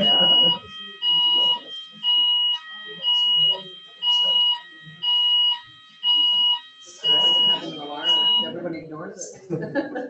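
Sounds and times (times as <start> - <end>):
fire alarm beeping: 0.0 - 8.6.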